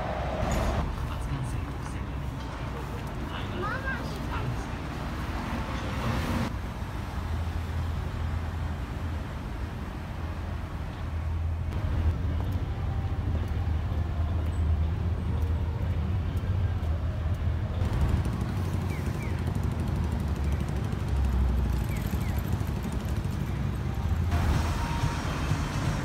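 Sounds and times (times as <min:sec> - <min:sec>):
low rumble of road traffic: 0:00.0 - 0:26.0
street noise: 0:00.0 - 0:26.0.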